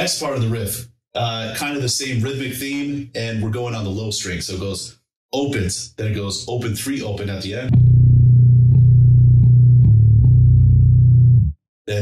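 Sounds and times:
bass guitar picked notes: 7.7s - 12.0s.

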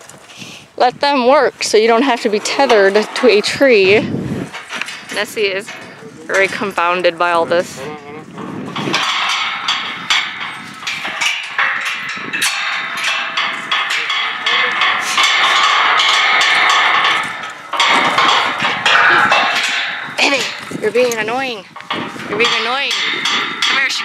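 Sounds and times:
metal panels clanging: 0.8s - 24.0s.

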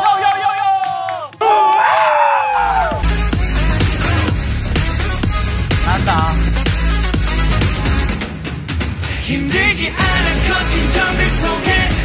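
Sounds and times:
audience shouting and cheering: 0.0s - 3.1s
pop music with heavy bass: 2.6s - 12.0s.

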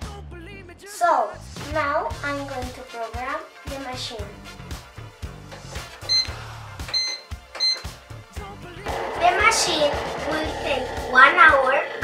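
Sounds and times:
short high electronic beeps: 6.9s - 7.8s.

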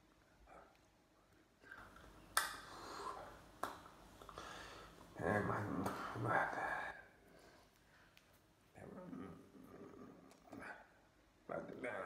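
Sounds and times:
hands smacking together: 2.0s - 2.8s, 3.4s - 4.4s.

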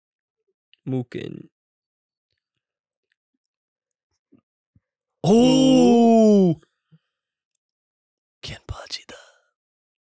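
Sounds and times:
man whispering: 8.4s - 9.5s.

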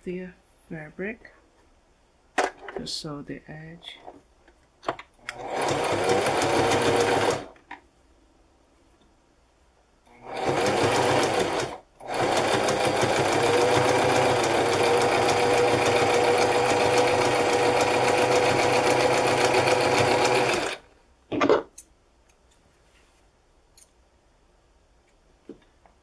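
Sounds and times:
sewing machine stitching: 5.2s - 7.6s, 10.1s - 20.8s.

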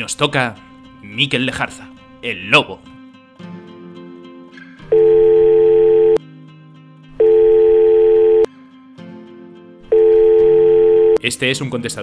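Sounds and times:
quiet background music: 0.0s - 12.0s
telephone ringing: 4.9s - 6.2s, 7.2s - 8.5s, 9.9s - 11.2s.

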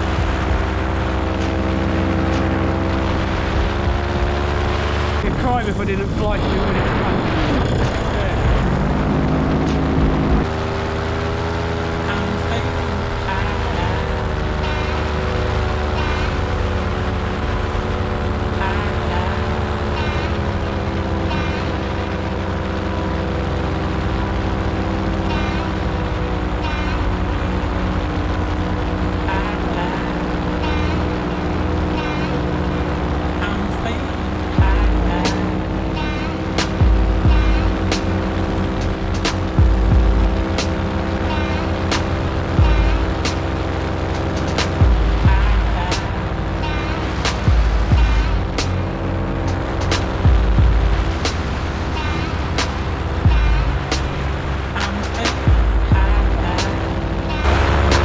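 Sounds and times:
paramotor engine droning: 0.0s - 58.0s.

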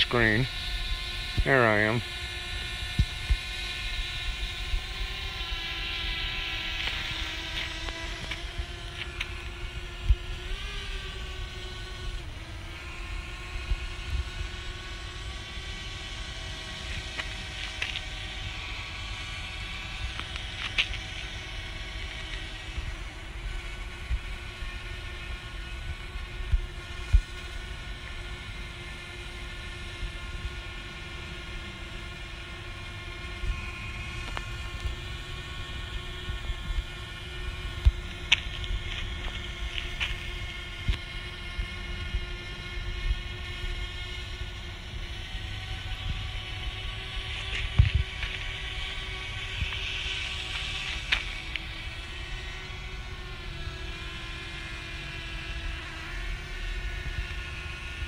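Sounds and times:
drone propeller motors whining: 0.0s - 58.0s.

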